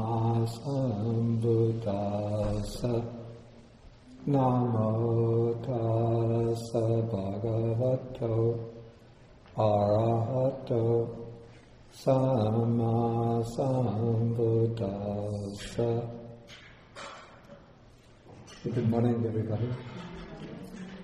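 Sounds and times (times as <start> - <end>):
man chanting: 0.0 - 8.9, 9.6 - 16.5, 18.6 - 19.9.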